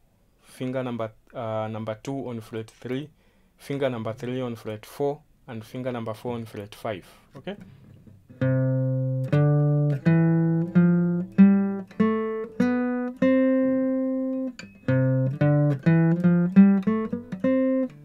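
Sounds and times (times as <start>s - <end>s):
acoustic guitar playing a scale: 7.6s - 18.0s.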